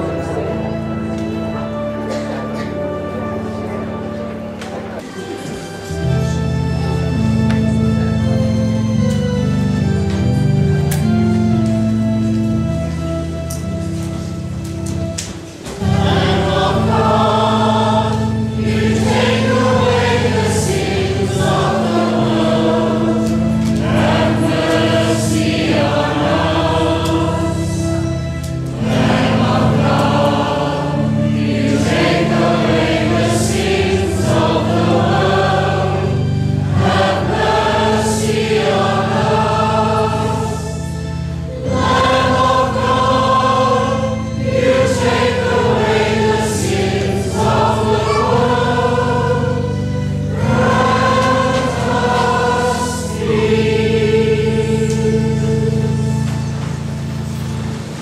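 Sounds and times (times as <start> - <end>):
choir singing a hymn: 0.0 - 58.0
sustained low accompanying notes: 0.0 - 58.0.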